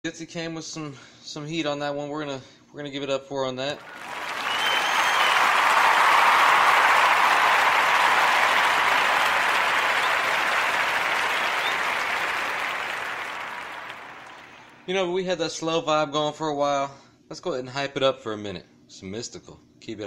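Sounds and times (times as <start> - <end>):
crowd applause: 3.8 - 14.8.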